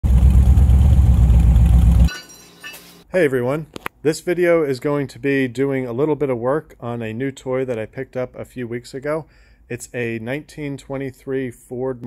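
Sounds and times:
loud car engine driving: 0.0s - 2.1s.

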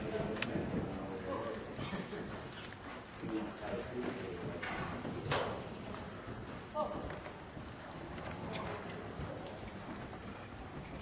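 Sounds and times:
people talking in background: 0.0s - 11.0s
horse hoofbeats on dirt: 0.1s - 11.0s.

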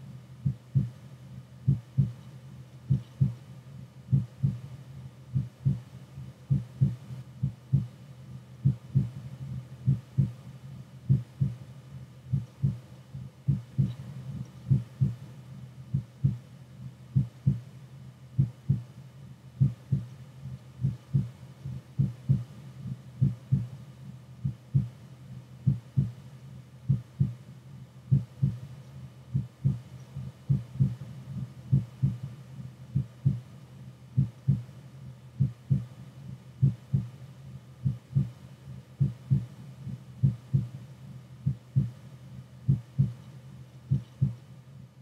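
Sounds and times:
faint steady hum: 0.0s - 45.0s
heartbeat thumps: 0.4s - 1.0s, 1.6s - 2.3s, 2.9s - 3.4s, 4.1s - 8.0s, 8.6s - 10.4s, 11.1s - 11.6s, 12.3s - 15.3s, 15.9s - 16.5s, 17.1s - 17.7s, 18.4s - 18.9s, 19.6s - 23.8s, 24.4s - 25.0s, 25.6s - 26.2s, 26.8s - 27.4s, 28.1s - 28.7s, 29.3s - 33.5s, 34.2s - 34.8s, 35.4s - 37.2s, 37.8s - 38.4s, 39.0s - 40.8s, 41.4s - 42.1s, 42.7s - 43.3s, 43.9s - 44.4s.

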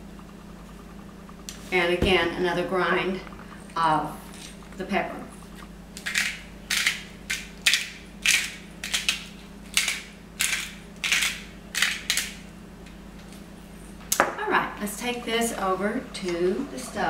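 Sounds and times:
pepper mill grinding: 6.0s - 12.4s.

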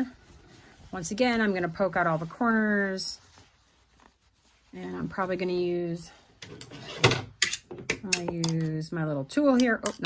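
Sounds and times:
faint fabric rustle: 0.0s - 7.1s.

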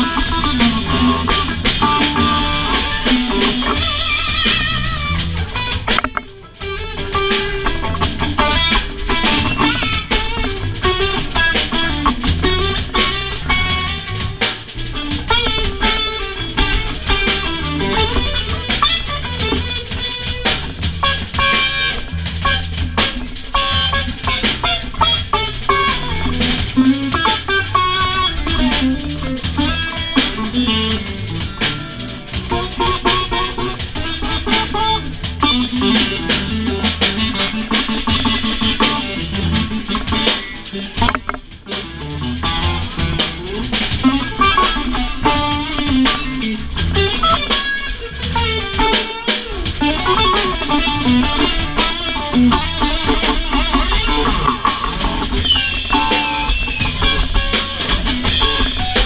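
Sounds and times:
bass guitar: 0.0s - 59.0s
drum kit: 0.0s - 59.0s
electric guitar: 0.0s - 59.0s.

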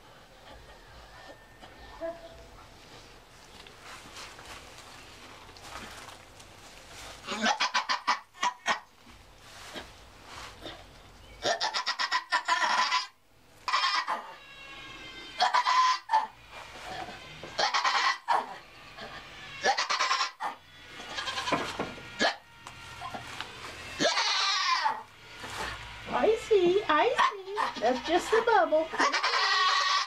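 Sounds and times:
goat bleating loudly: 7.2s - 8.8s, 11.4s - 25.8s, 27.0s - 30.0s.

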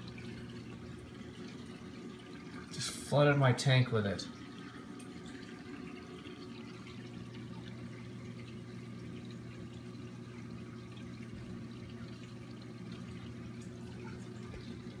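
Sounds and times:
constant low hum: 0.0s - 15.0s.

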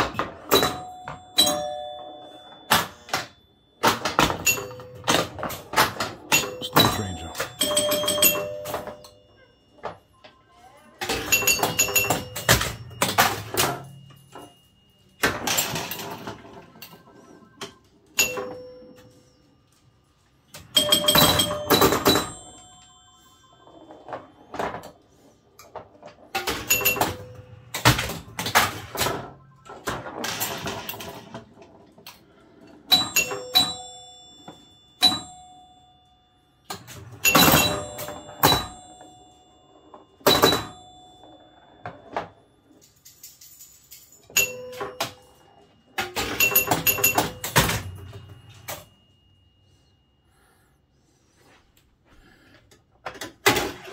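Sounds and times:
pinball mechanical clacks: 0.0s - 9.2s, 11.0s - 19.3s, 20.5s - 35.7s, 36.7s - 49.0s
pinball bell chimes: 0.0s - 50.2s.

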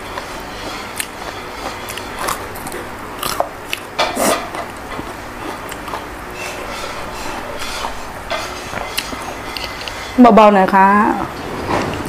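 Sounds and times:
biting and chewing food: 0.2s - 7.2s.

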